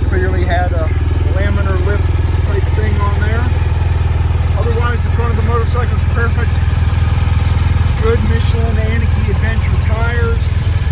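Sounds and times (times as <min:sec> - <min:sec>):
motorcycle engine idling: 0:00.0 - 0:10.9.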